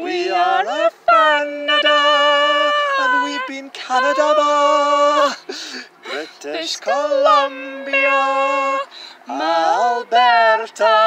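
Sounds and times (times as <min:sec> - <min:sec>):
person singing long held notes: 0:00.0 - 0:05.5, 0:06.1 - 0:11.0.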